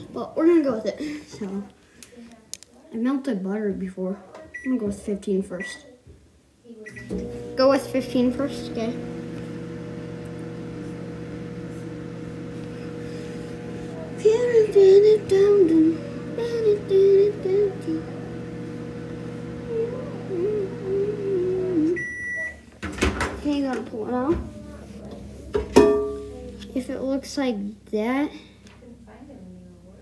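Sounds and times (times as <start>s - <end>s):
microwave beep: 4.5s - 4.8s, 5.6s - 5.8s, 6.8s - 7.3s, 21.2s - 22.7s
microwave oven humming: 6.9s - 30.0s
person humming a tune: 19.7s - 22.0s.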